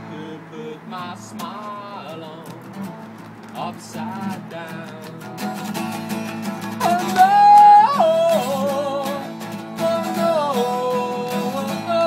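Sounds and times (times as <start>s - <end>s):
high wordless singing: 0.0s - 2.8s, 3.5s - 12.0s
strummed acoustic guitar: 0.0s - 12.0s.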